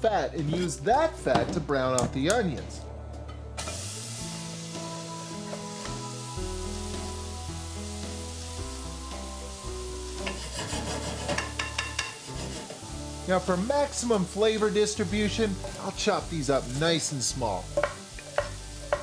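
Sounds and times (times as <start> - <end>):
background music with held notes: 0.0 - 19.0
bacon sizzling in a pan: 3.6 - 19.0.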